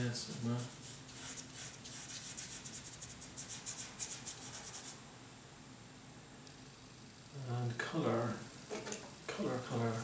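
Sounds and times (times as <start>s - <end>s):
bristle brush scratchy strokes: 0.2s - 5.0s.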